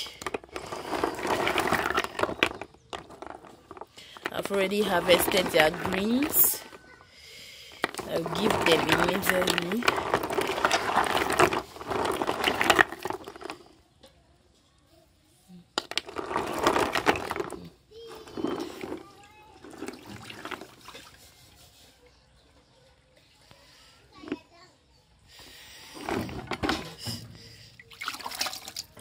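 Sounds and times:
water sloshing in a plastic basin: 0:07.8 - 0:13.6, 0:18.3 - 0:21.5, 0:26.0 - 0:29.0.

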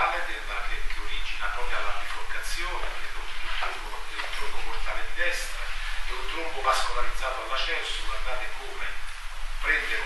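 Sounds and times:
low electrical hum: 0:00.0 - 0:10.0
man speaking: 0:00.0 - 0:10.0.

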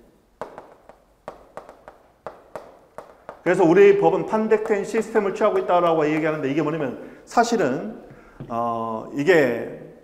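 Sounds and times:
chalk tapping on a chalkboard: 0:00.4 - 0:06.4.

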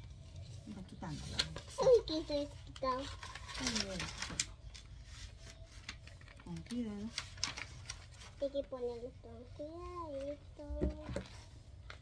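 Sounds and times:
adhesive paper crinkling: 0:00.0 - 0:08.8.

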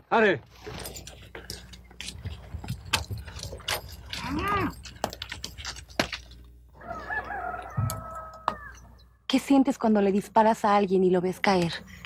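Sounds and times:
rooster crowing: 0:06.8 - 0:09.0.

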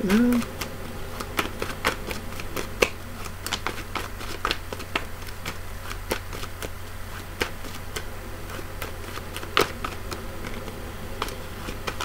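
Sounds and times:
cards being shuffled: 0:00.0 - 0:12.0
low electrical hum: 0:00.0 - 0:12.0.

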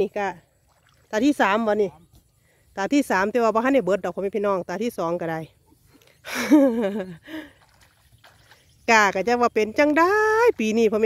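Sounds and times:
woman speaking: 0:00.0 - 0:00.4, 0:01.1 - 0:02.0, 0:02.8 - 0:05.6, 0:08.9 - 0:11.0
woman laughing: 0:06.2 - 0:07.5.

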